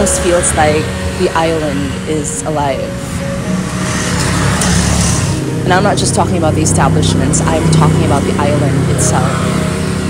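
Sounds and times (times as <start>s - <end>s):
boat motor droning: 0.0s - 10.0s.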